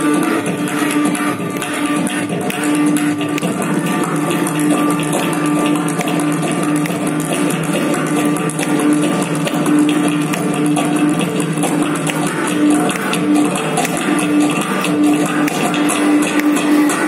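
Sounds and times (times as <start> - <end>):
hand drum strokes: 0.0 - 17.0.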